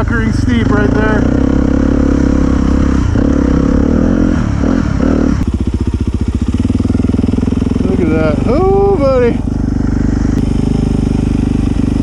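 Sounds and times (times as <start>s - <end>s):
dirt bike engine running: 0.0s - 12.0s.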